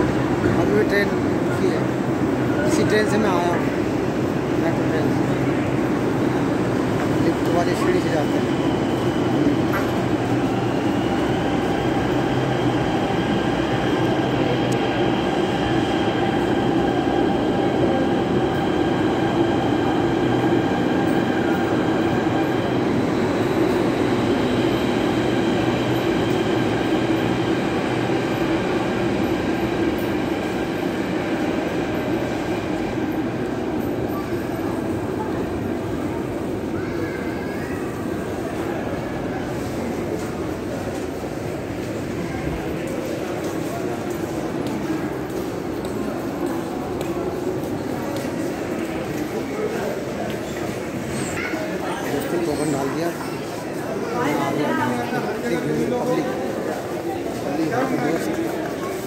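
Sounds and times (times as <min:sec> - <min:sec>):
metro train rumble: 0:00.0 - 0:52.3.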